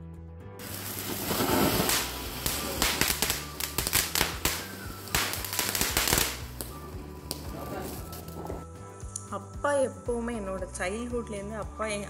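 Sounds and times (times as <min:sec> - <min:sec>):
hissing rush of sparks: 0:00.6 - 0:07.4
firecrackers cracking and popping: 0:00.6 - 0:08.6.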